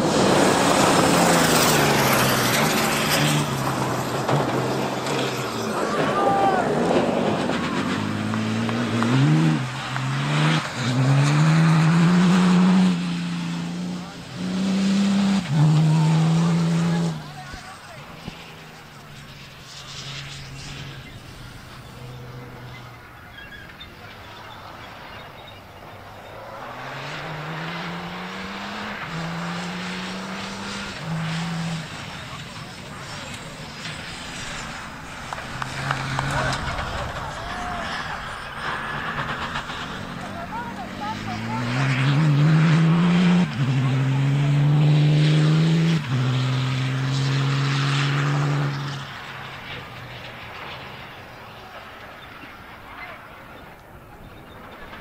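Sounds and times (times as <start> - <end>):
rally car engine accelerating: 0.0 - 55.0.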